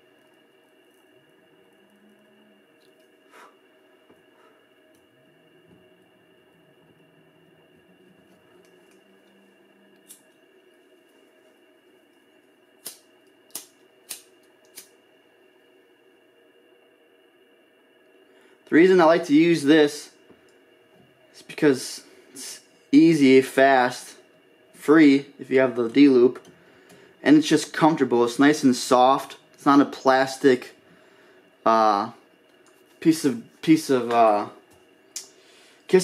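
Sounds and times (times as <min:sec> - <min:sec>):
steady low hum: 0:00.0 - 0:36.0
lighter being struck: 0:10.0 - 0:10.3, 0:12.8 - 0:14.9.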